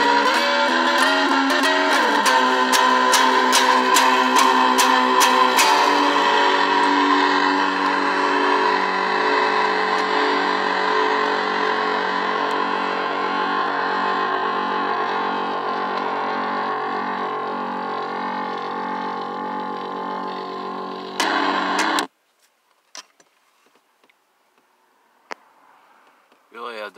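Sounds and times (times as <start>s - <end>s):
electric guitar chord ringing: 0.0s - 22.1s.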